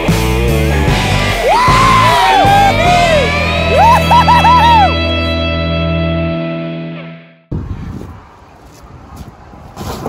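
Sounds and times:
road traffic rumble: 7.5 - 10.0.

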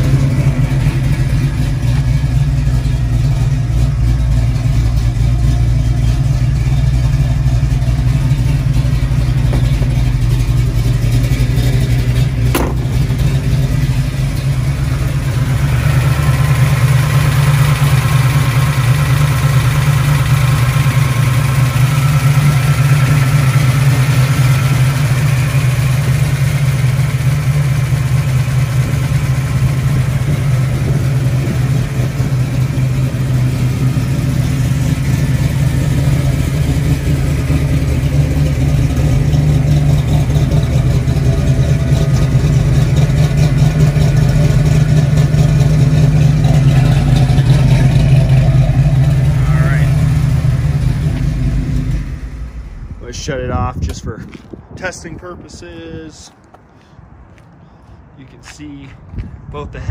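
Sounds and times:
engine idling: 0.0 - 59.9.

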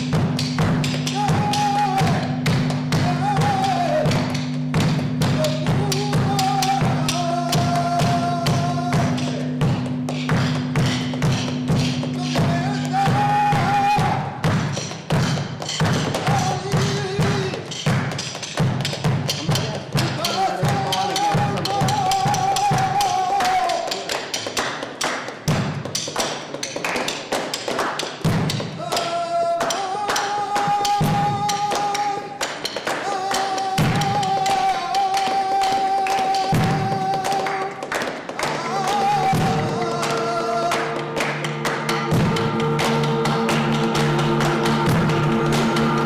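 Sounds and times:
low instrumental drone: 0.0 - 17.5, 38.4 - 46.0
percussive thumps and taps: 0.0 - 23.0, 24.1 - 28.8
man singing ornamented notes: 1.0 - 4.4, 5.2 - 9.8, 11.8 - 14.4, 16.2 - 17.7, 19.5 - 24.1, 28.8 - 32.4, 33.0 - 37.8, 38.4 - 41.2.

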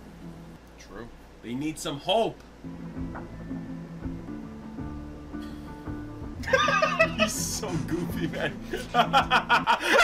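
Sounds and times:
quiet film score: 0.0 - 10.0
men laughing loudly: 6.4 - 10.0.

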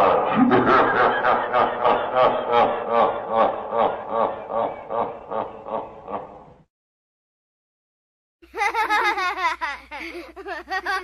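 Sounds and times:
person laughing: 0.0 - 6.4, 8.5 - 11.0.

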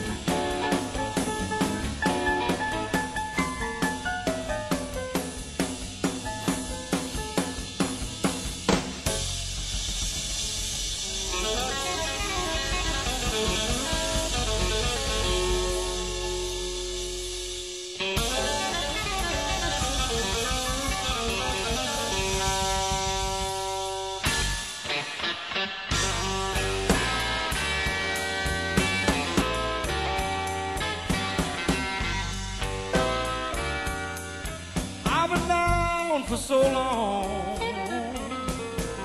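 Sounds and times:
blues band playing: 0.0 - 39.0
drum kit strokes: 0.0 - 39.0
electric guitar sustained notes: 10.4 - 34.8.

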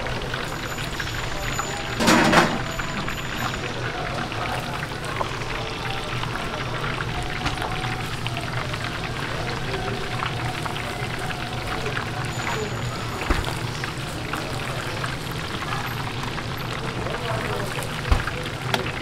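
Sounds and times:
chicken deep-frying in oil: 0.0 - 19.0.

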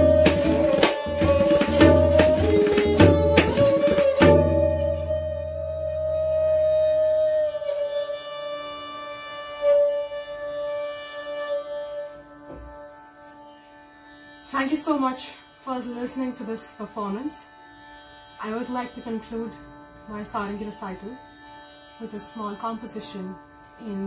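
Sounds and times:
tabla drum stroke: 0.0 - 6.8
bowed string note: 0.0 - 8.3.

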